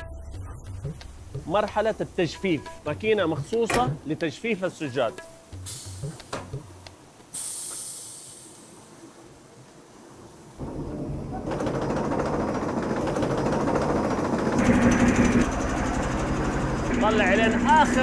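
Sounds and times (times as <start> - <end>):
brief hiss of machine lever: 7.3 - 8.8
machine mechanical clatter: 10.6 - 18.0
steady machine hum: 10.6 - 18.0.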